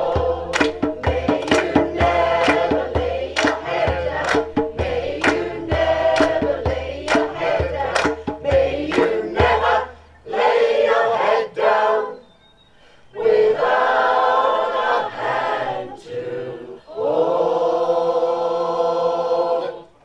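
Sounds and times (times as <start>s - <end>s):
mixed choir singing: 0.0s - 12.3s, 13.1s - 20.0s.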